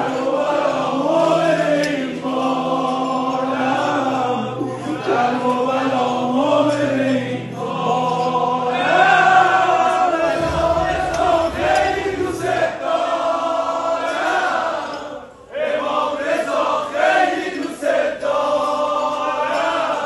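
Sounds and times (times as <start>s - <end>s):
men singing devotional song: 0.0s - 20.0s
steady low drone: 10.3s - 13.2s.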